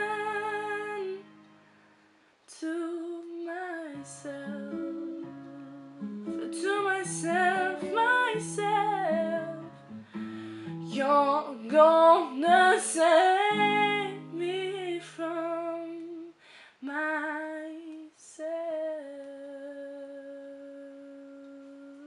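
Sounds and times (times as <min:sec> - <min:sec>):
woman singing a ballad: 0:00.0 - 0:01.3, 0:02.5 - 0:10.0, 0:10.8 - 0:22.0
acoustic guitar: 0:00.0 - 0:16.2.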